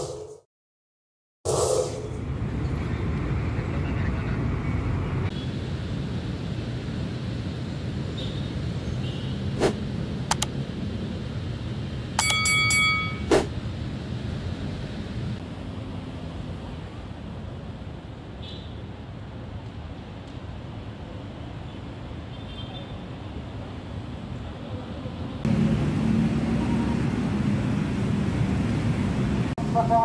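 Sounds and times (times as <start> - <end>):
road traffic rumble: 1.6 - 30.0
sharp clicks: 10.3 - 10.5.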